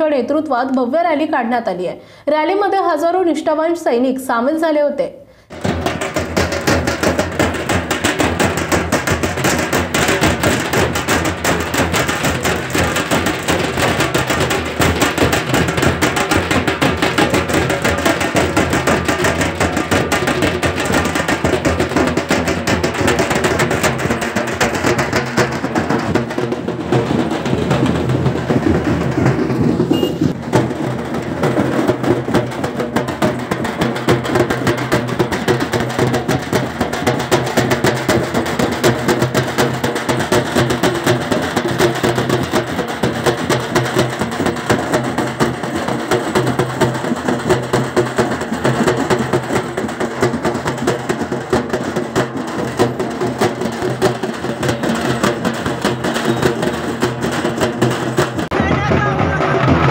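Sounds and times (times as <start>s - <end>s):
music with fast dense drumming: 5.5s - 59.9s.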